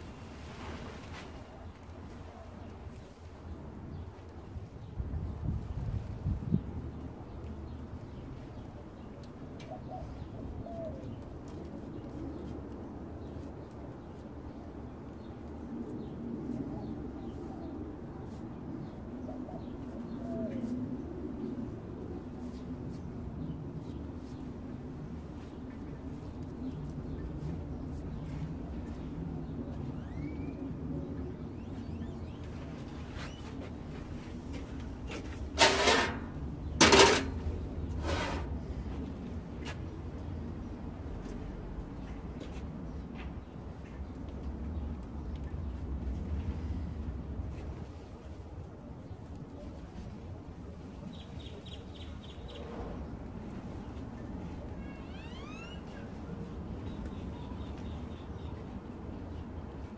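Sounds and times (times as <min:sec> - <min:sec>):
low background noise: 0:00.0 - 0:59.9
dove cooing: 0:09.6 - 0:11.1
hand tool scraping: 0:35.2 - 0:38.6.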